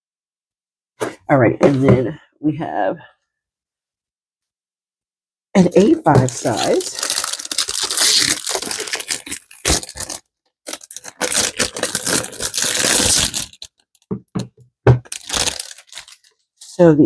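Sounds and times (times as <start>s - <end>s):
packaging rustling and crinkling: 5.8s - 14.1s, 15.0s - 16.8s.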